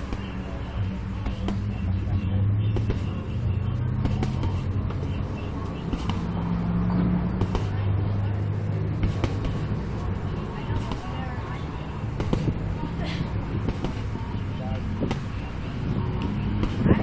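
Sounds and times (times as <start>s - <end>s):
punches thudding on heavy bag: 4.0s - 4.7s, 7.4s - 7.9s, 8.9s - 9.8s, 12.0s - 12.6s, 13.5s - 14.2s.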